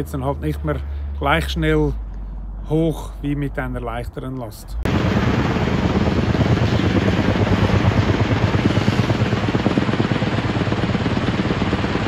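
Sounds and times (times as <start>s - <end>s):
helicopter hovering with rotor chop: 4.8s - 12.0s.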